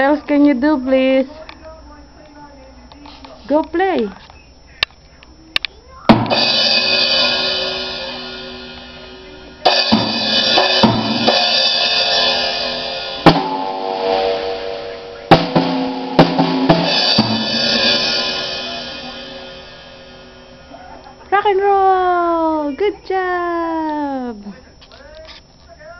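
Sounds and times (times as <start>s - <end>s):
unrhythmic drum and cymbal hits: 6.1s - 21.3s.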